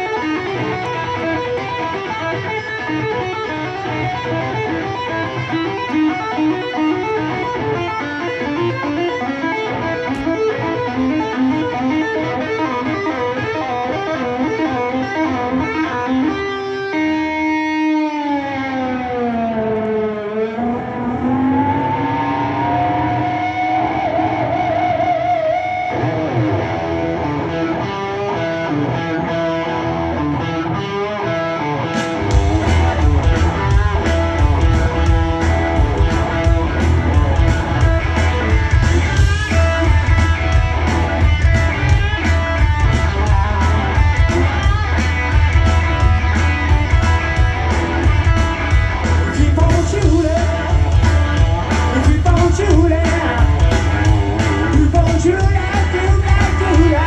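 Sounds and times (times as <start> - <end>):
electric guitar solo: 0.0 - 57.0.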